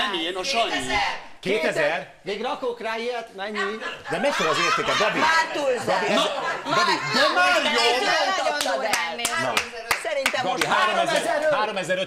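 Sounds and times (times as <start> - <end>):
lively talk: 0.0 - 12.0
sharp hand claps: 8.6 - 10.8.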